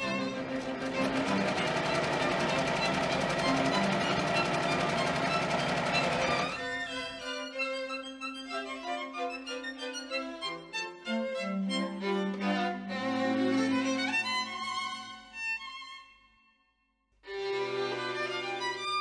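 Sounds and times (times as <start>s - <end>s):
sewing machine stitching: 0.0s - 6.8s
string music with violin: 0.0s - 16.5s, 17.2s - 19.0s.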